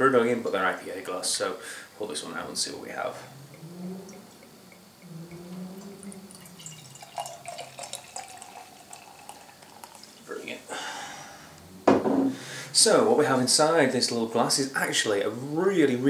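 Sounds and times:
beer pouring into a glass: 4.2 - 10.8.

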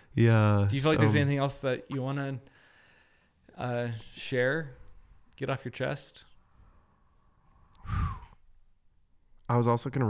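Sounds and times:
man sighing: 7.8 - 8.4.

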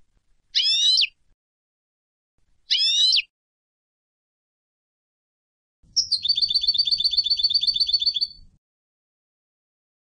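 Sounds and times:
goldfinch singing: 6.0 - 8.4.

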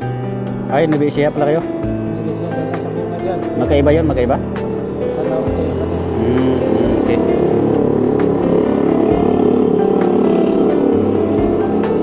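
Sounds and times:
background music: 0.0 - 12.0
street noise: 0.0 - 12.0
car driving past: 4.4 - 12.0.

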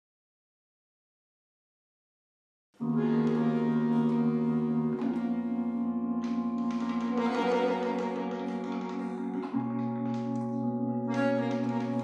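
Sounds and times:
bandoneon chords: 2.8 - 12.0
electric keyboard chords: 2.8 - 12.0.

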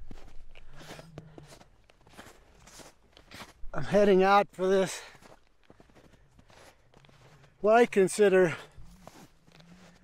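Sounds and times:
boots crunching through snow: 0.0 - 10.0.

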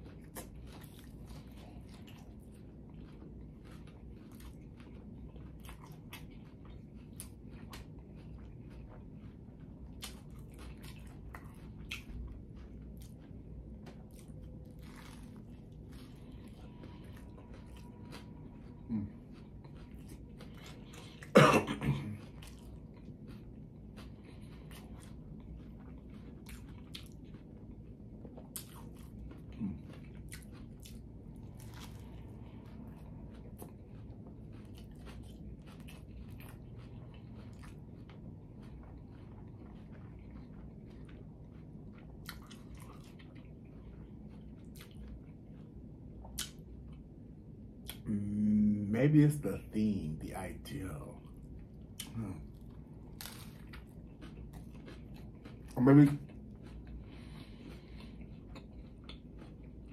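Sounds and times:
wet chewing and mouth smacks: 0.0 - 21.4, 22.0 - 48.1, 51.2 - 59.9
person coughing: 21.2 - 22.2.

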